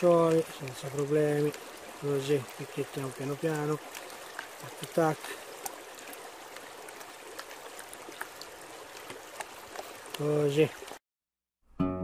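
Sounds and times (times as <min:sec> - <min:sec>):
river water rushing over pan: 0:00.0 - 0:11.0.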